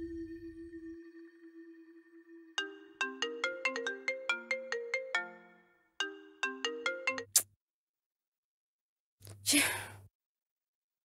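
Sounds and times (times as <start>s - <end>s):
phone ringtone chiming melody: 1.0s - 7.3s.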